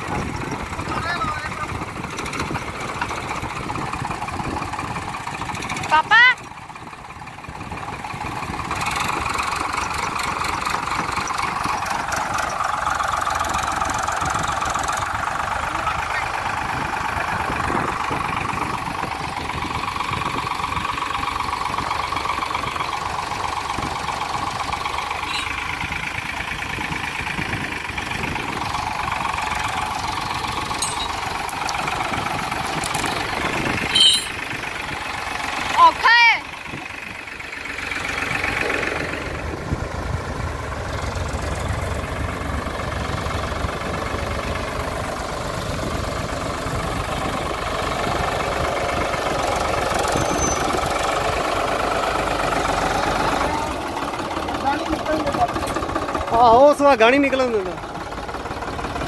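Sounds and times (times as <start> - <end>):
tractor diesel engines labouring: 0.0 - 59.0.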